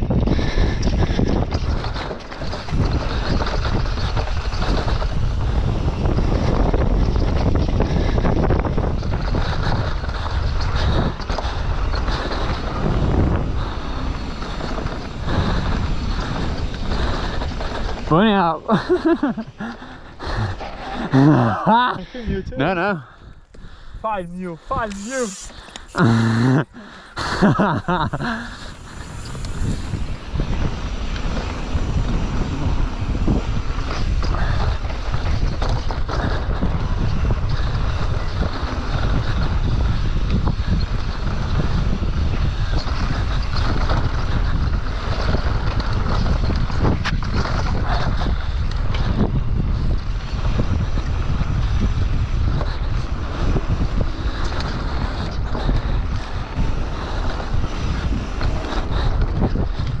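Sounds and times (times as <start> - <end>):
bike knocks and rattles: 0.0 - 19.7, 29.5 - 60.0
wind buffeting microphone: 0.0 - 60.0
tyres rolling over dirt: 1.0 - 7.9, 8.7 - 23.0, 25.0 - 60.0.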